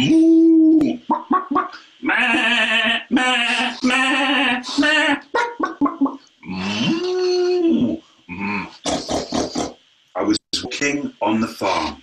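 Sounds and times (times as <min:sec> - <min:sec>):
man imitating a dog: 0:00.0 - 0:01.1, 0:02.2 - 0:09.7.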